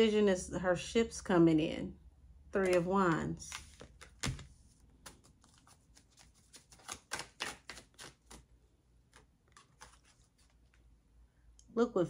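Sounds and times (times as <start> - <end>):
cards being shuffled: 2.6 - 10.9.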